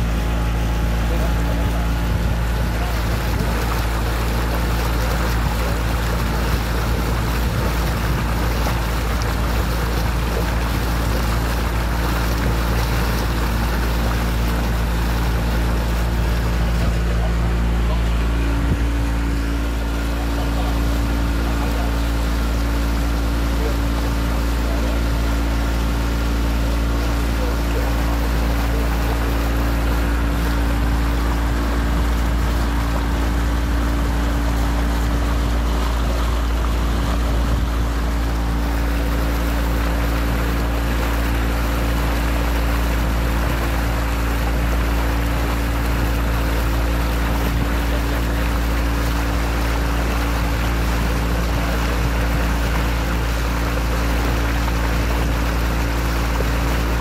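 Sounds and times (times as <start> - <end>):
boat engine droning: 0.0 - 57.0
water washing along hull: 0.0 - 57.0.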